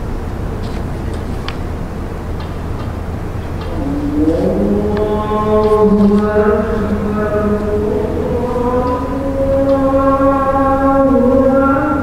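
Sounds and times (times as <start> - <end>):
low hum and hiss: 0.0 - 12.0
person chanting: 3.4 - 12.0.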